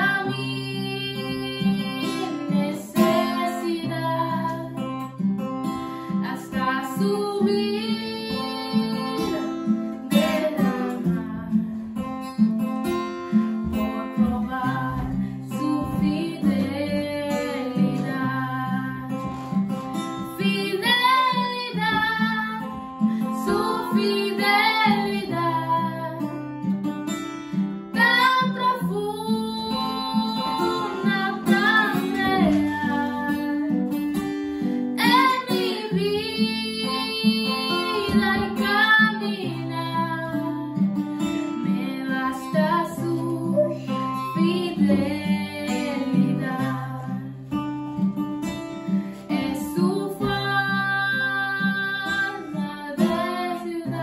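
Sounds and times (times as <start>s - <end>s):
woman singing worship song: 0.0s - 4.9s, 6.2s - 11.9s, 13.4s - 19.6s, 20.2s - 26.3s, 28.0s - 34.0s, 34.6s - 40.8s, 41.6s - 47.5s, 49.1s - 54.0s
acoustic guitar: 0.0s - 54.0s.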